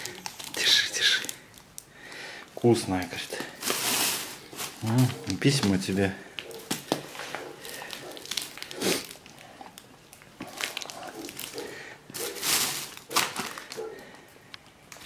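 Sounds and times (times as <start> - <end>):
plastic bags and paper rustling: 0.0 - 15.0.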